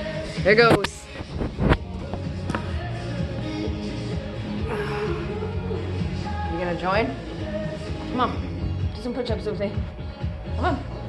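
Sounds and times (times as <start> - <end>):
music playing in room: 0.0 - 11.0.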